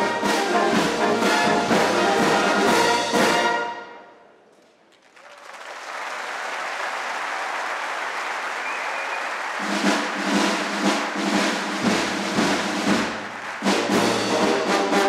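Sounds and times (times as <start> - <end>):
drum beats: 0.0 - 3.6, 9.1 - 15.0
brass band playing: 0.0 - 4.2, 9.4 - 15.0
audience applause: 4.8 - 14.9.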